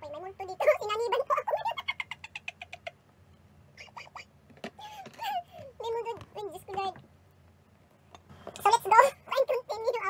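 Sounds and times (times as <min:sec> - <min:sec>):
woman laughing: 0:01.4 - 0:03.0.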